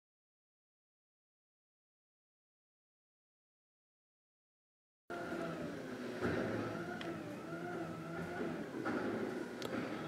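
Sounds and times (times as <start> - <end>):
garbage truck engine hum: 5.1 - 10.0.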